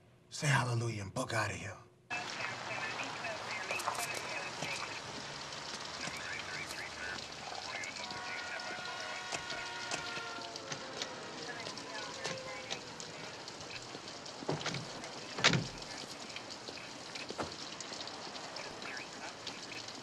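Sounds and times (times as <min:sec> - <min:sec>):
scattered crackles and clicks: 0:02.1 - 0:20.0
steady hiss: 0:02.1 - 0:20.0.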